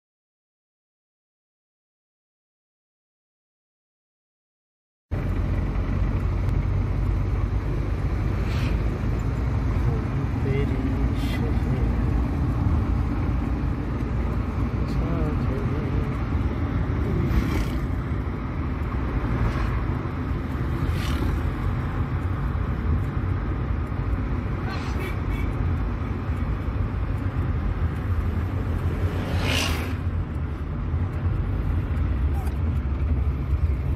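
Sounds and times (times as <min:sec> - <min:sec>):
vehicle engine and road rumble: 0:05.1 - 0:33.9.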